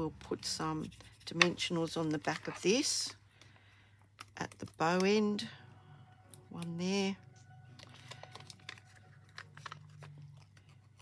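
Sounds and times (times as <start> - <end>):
paper crinkling and clicks: 7.7 - 11.0.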